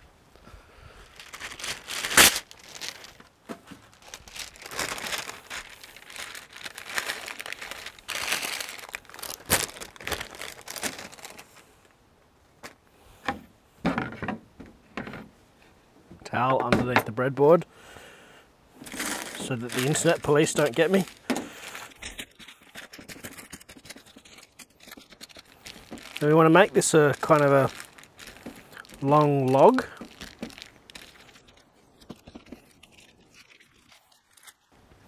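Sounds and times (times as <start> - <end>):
paper crinkling and rustling: 1.1 - 11.7, 18.8 - 34.8
baking paper tearing: 1.2 - 3.2, 3.9 - 11.4, 18.8 - 31.6.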